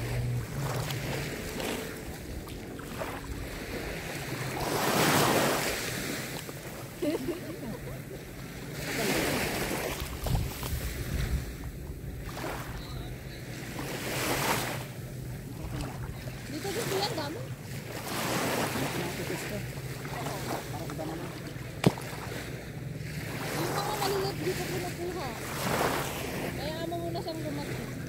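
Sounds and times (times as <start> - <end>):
small waves washing on shore: 0.0 - 28.0.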